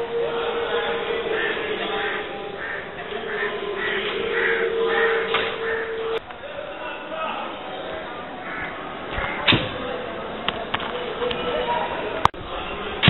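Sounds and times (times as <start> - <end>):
indistinct voices: 0.0 - 13.0
crows cawing: 0.8 - 6.2, 8.4 - 9.5.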